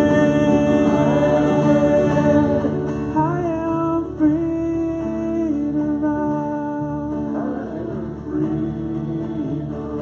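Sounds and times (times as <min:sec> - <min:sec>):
voices singing long notes: 0:00.0 - 0:03.1, 0:07.2 - 0:10.0
acoustic guitars: 0:00.0 - 0:10.0.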